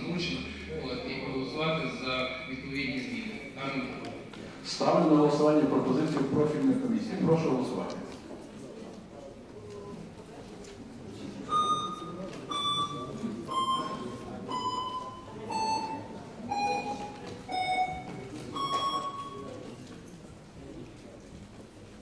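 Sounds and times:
murmur of voices: 0:00.0 - 0:22.0
electronic beeps: 0:11.5 - 0:19.6.

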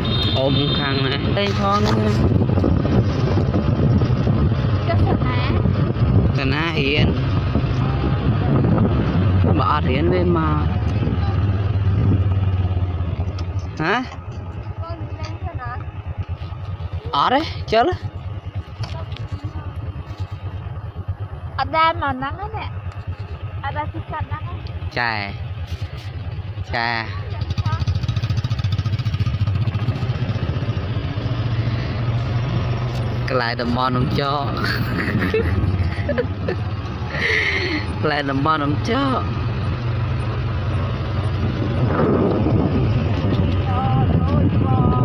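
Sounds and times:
small motorcycle engine running: 0:00.0 - 0:45.0.

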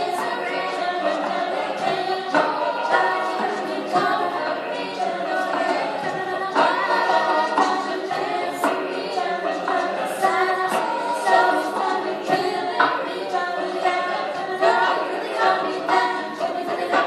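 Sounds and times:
a cappella group singing: 0:00.0 - 0:17.0.

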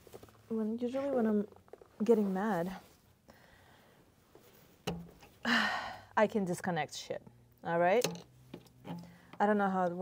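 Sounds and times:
connector clicking: 0:04.8 - 0:05.3.

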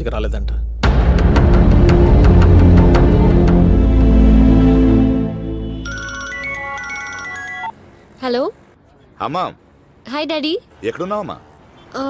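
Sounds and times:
mobile phone ringtone: 0:05.7 - 0:07.8.

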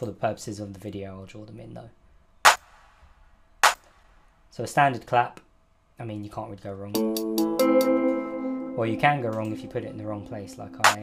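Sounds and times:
drum machine clap: 0:02.5 - 0:04.2, 0:10.8 - 0:11.0.

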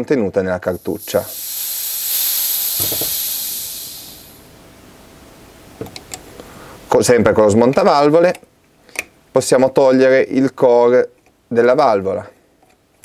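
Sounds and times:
compressed air hissing from valve: 0:00.7 - 0:04.5.

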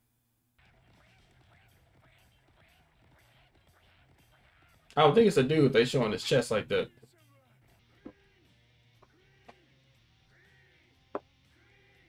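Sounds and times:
man talking loudly: 0:05.0 - 0:06.9.

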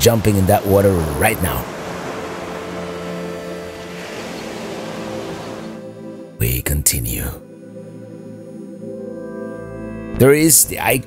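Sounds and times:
surf washing onto beach: 0:00.0 - 0:05.8
soft background music: 0:00.0 - 0:11.0.

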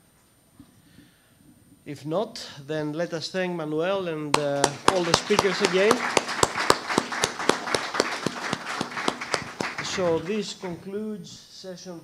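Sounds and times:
audience applauding: 0:04.3 - 0:10.8.

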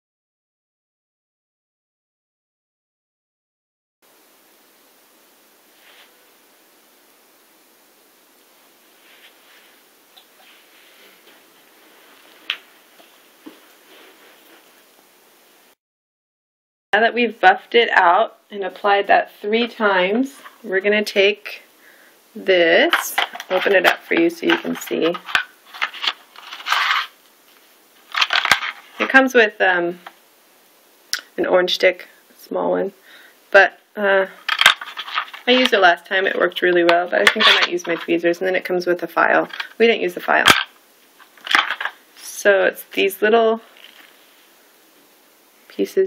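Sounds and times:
steady hiss: 0:04.1 - 0:15.8, 0:17.4 - 0:46.0
plastic packet crinkling: 0:22.9 - 0:27.2, 0:28.0 - 0:29.1, 0:34.4 - 0:35.7, 0:40.4 - 0:42.0.

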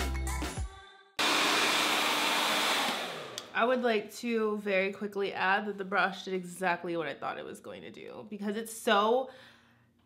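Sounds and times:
hair dryer blowing: 0:01.2 - 0:03.6.

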